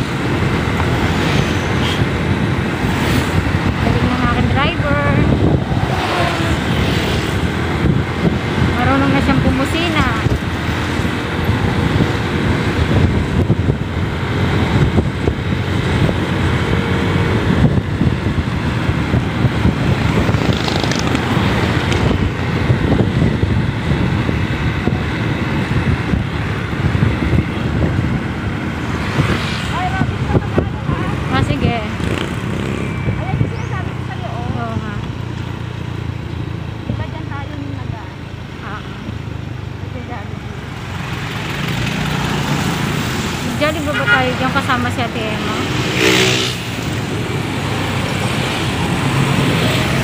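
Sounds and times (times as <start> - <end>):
wind rushing over microphone: 0.0 - 37.5, 38.1 - 50.0
motorcycle engine and tyres: 0.0 - 50.0
passing traffic: 0.0 - 50.0.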